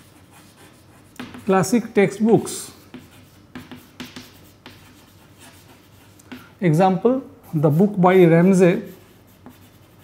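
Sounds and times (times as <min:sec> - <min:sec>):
chalk tapping and scraping: 0:00.0 - 0:06.8, 0:07.4 - 0:10.0.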